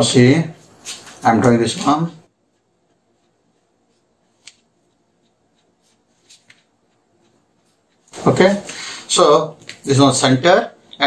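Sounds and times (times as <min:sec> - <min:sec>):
pencil and ruler on paper: 0:01.8 - 0:08.8.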